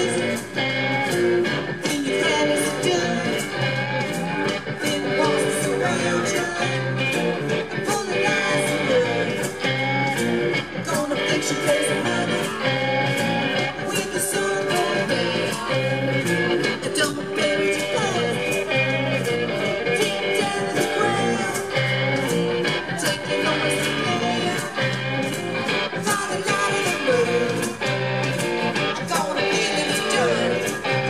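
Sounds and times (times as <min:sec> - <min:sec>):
electric guitars: 0:00.0 - 0:31.0
steady drum beat: 0:00.0 - 0:31.0
woman singing: 0:01.8 - 0:03.8, 0:04.7 - 0:07.2, 0:07.8 - 0:09.6, 0:10.8 - 0:12.7, 0:13.6 - 0:18.8, 0:20.0 - 0:21.8, 0:22.7 - 0:25.0, 0:26.0 - 0:27.8, 0:29.0 - 0:31.0.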